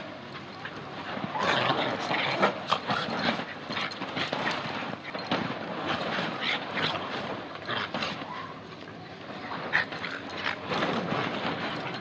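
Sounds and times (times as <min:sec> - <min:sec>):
dogs play-fighting vocalizations: 0:00.3 - 0:08.6, 0:09.6 - 0:12.0.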